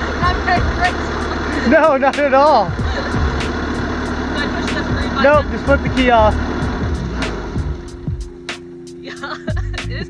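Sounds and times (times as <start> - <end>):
background music with held notes: 0.0 - 10.0
loader engine running down: 0.0 - 10.0.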